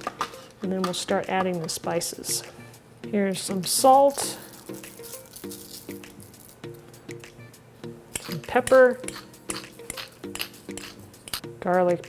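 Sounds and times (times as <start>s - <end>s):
soft background music: 0.0s - 12.0s
pepper mill grinding: 3.8s - 6.8s, 8.2s - 11.4s.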